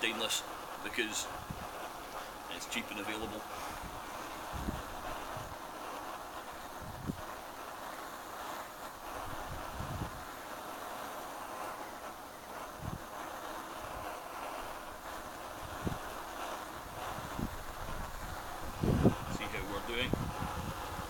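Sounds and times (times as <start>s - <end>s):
petrol stove hissing: 0.0s - 21.0s
wind bumps on microphone: 1.4s - 1.8s, 3.7s - 5.6s, 6.6s - 7.3s, 9.2s - 10.2s, 12.7s - 13.1s, 15.6s - 16.2s, 16.8s - 21.0s.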